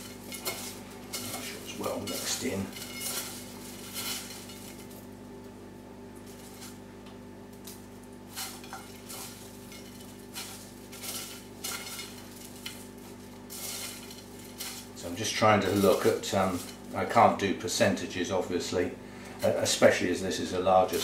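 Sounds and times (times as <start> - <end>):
hands stirring gritty potting mix: 0.0 - 6.9, 7.5 - 21.0.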